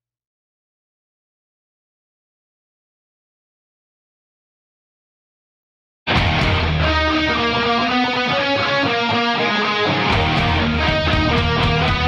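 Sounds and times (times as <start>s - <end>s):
steady bass: 6.1s - 7.9s, 10.1s - 12.0s
electric guitar melody: 6.1s - 12.0s
drum beat: 10.1s - 12.0s.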